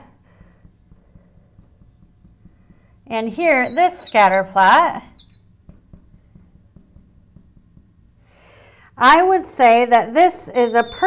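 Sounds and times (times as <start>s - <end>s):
marker tapping on glass: 0.3s - 8.2s, 10.6s - 11.0s.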